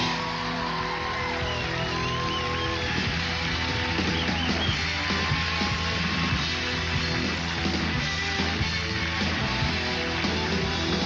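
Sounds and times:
live band music led by guitar: 0:00.0 - 0:11.0.

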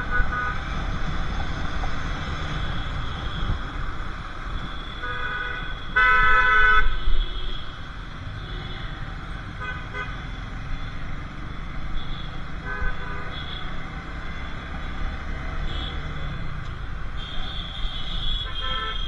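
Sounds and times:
vehicle horns honking: 0:04.5 - 0:07.7, 0:17.2 - 0:19.0.

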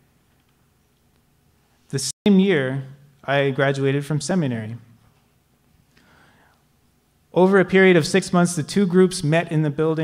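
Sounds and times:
faint breath: 0:05.9 - 0:06.7.

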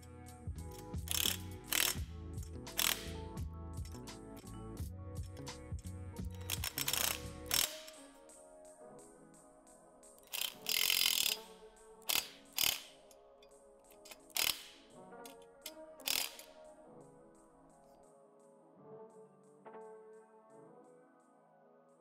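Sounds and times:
cordless drill driving bolts: 0:01.0 - 0:02.1, 0:02.7 - 0:03.2, 0:06.4 - 0:08.1, 0:10.3 - 0:11.5, 0:12.1 - 0:13.0, 0:14.0 - 0:14.8, 0:16.0 - 0:16.6.

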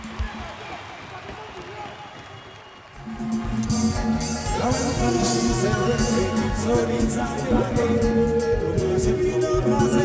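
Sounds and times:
band music with strong bass: 0:03.0 - 0:10.0.

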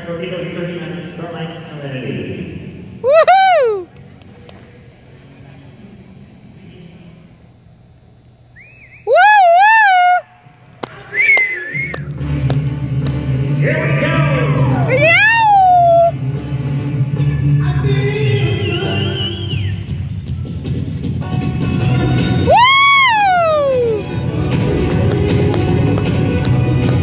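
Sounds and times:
spectators whooping: 0:03.0 - 0:03.9, 0:09.0 - 0:12.1, 0:13.8 - 0:16.2, 0:22.4 - 0:24.1
music with steady beat: 0:23.4 - 0:27.0.

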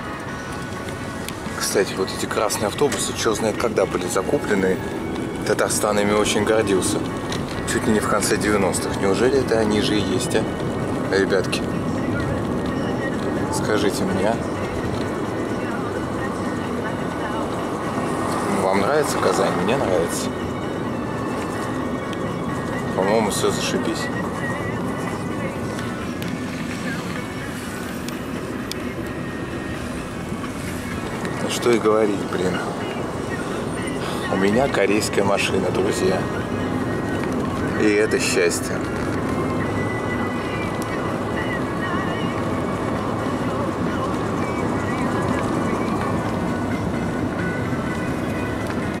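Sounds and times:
car road and engine noise: 0:00.0 - 0:49.0.

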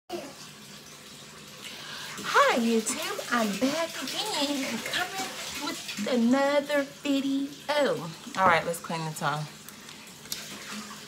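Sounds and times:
bathtub tap running: 0:00.1 - 0:11.0.

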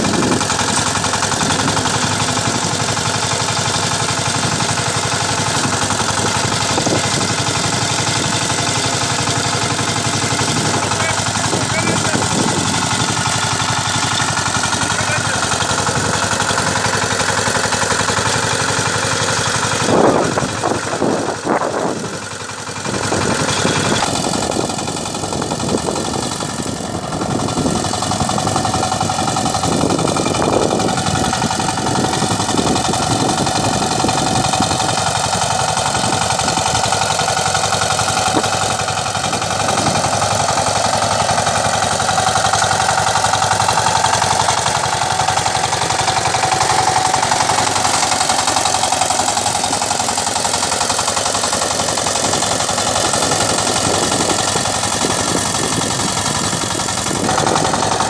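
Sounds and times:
diesel tiller engine chugging: 0:00.0 - 0:58.0
tiller churning dry soil: 0:00.0 - 0:58.0.

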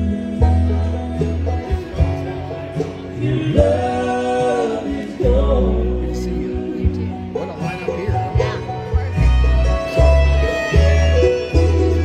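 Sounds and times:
men singing in harmony: 0:00.0 - 0:01.3, 0:03.1 - 0:08.0
bluegrass band playing: 0:00.0 - 0:12.0.

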